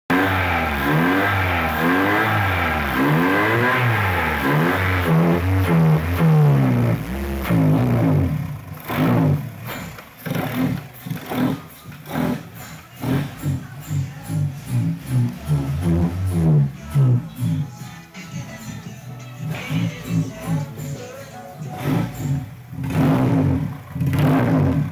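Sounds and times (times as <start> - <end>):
car engine revving: 0.1 - 17.8, 19.4 - 21.0, 21.6 - 24.9
rhythmic background music: 9.7 - 24.9.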